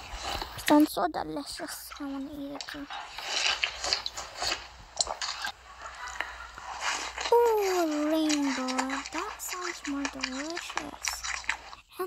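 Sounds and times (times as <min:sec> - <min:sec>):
crunchy biting and chewing: 0:00.0 - 0:00.7, 0:01.6 - 0:12.0.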